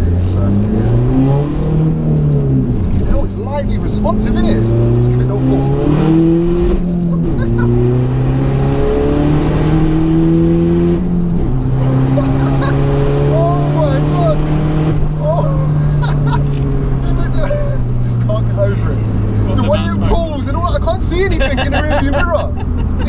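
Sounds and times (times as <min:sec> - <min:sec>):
car engine accelerating: 0:00.0 - 0:23.0.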